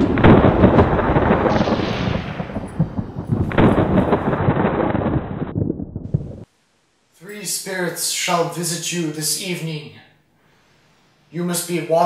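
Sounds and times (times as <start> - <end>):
rolling thunder: 0.0 - 6.5
thunder clap: 0.0 - 6.5.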